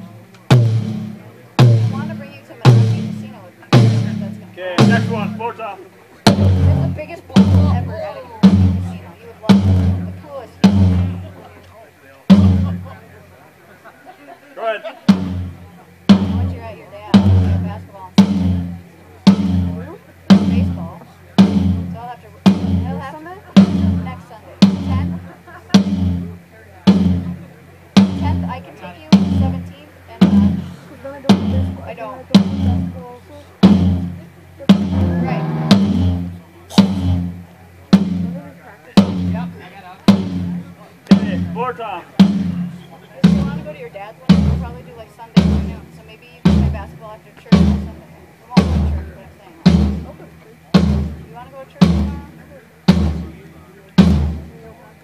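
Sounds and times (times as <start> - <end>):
single drum hits: 6.3 - 11.4, 12.3 - 12.9, 15.1 - 33.0, 33.6 - 38.4, 39.0 - 44.8, 48.6 - 52.3, 52.9 - 54.6.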